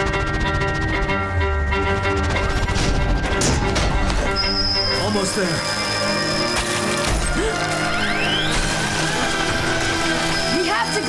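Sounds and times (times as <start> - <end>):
rising whine: 0.0 - 7.1
dramatic action music: 0.0 - 11.0.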